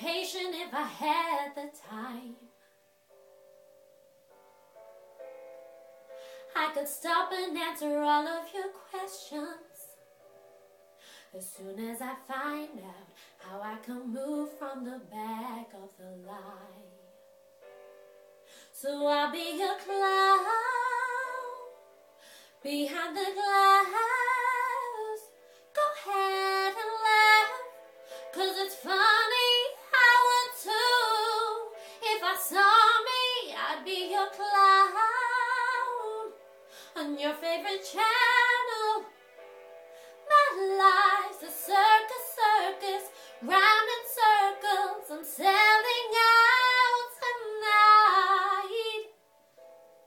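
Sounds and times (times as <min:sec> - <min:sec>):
woman singing a slow ballad: 0:00.0 - 0:02.5, 0:06.5 - 0:10.0, 0:11.3 - 0:17.0, 0:18.7 - 0:21.8, 0:22.6 - 0:39.1, 0:40.2 - 0:49.1.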